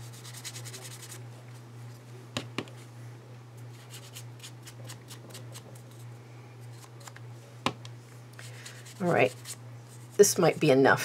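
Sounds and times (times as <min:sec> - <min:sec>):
brush scratching on paper: 0:00.0 - 0:01.2, 0:08.5 - 0:10.3.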